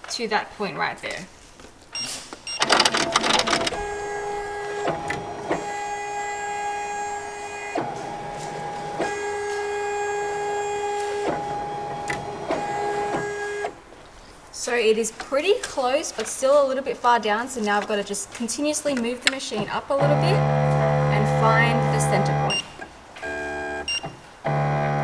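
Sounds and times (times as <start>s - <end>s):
embroidery machine clicks: 2.6s - 13.8s
embroidery machine motor whine: 2.6s - 13.8s, 20.0s - 22.6s, 23.2s - 25.0s.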